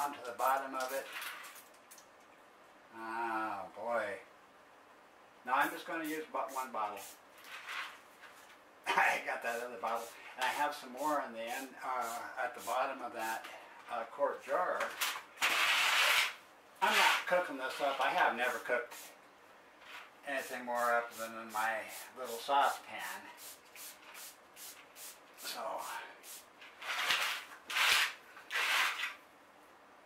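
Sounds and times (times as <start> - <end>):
spray bottle misting: 6.4 - 7.2, 11.6 - 12.8, 18.9 - 19.2, 20.0 - 29.2
spray bottle squirting: 23.4 - 25.5, 26.2 - 29.2.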